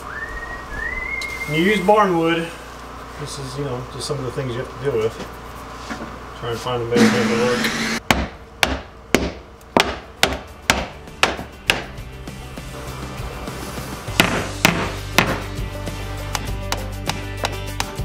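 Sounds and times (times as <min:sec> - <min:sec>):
hammer knocking on wood: 0:08.1 - 0:11.9, 0:14.2 - 0:15.5, 0:16.3 - 0:17.9
background music: 0:10.2 - 0:18.0.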